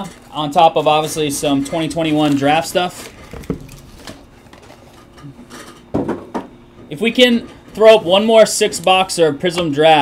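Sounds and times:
cardboard rustle: 0:00.0 - 0:05.0.

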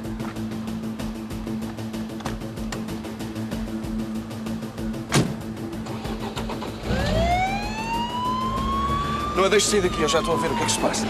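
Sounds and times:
background music: 0:00.0 - 0:11.0
sharp thump: 0:05.1 - 0:05.4
police siren wailing: 0:06.9 - 0:11.0.

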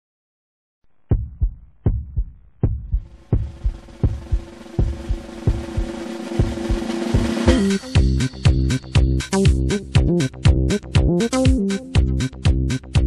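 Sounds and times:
heartbeat through stethoscope: 0:01.1 - 0:06.7
rising musical drone: 0:03.2 - 0:08.8.

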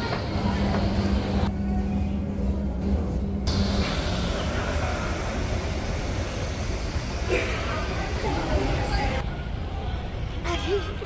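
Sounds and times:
road traffic rumble: 0:03.5 - 0:11.0.

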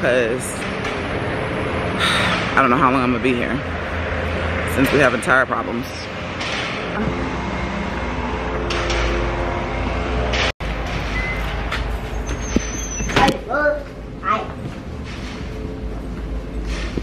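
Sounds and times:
outdoor low rumble: 0:00.0 - 0:17.0.

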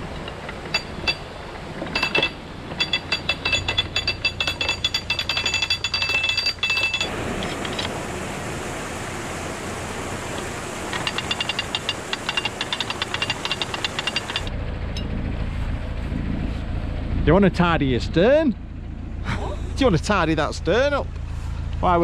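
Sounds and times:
rushing water noise: 0:00.0 - 0:14.5
ratchet pawl clicking on metal gear: 0:11.0 - 0:14.5.

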